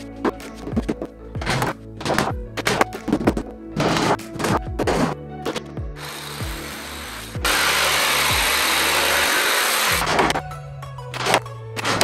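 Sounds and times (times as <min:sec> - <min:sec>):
background music: 0:00.0 - 0:12.0
jigsaw cutting wood: 0:06.0 - 0:10.3.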